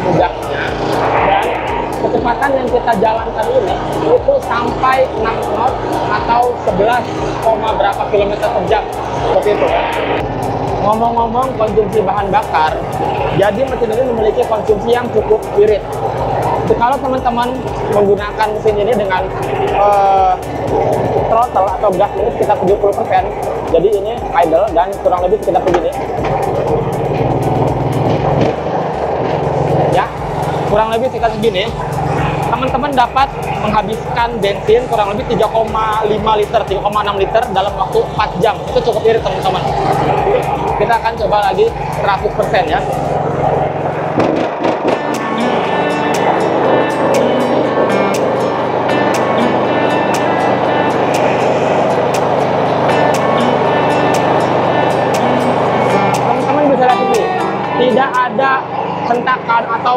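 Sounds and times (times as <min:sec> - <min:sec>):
background music with steady beat: 0:00.0 - 0:59.9
boat engine running: 0:00.0 - 0:59.9.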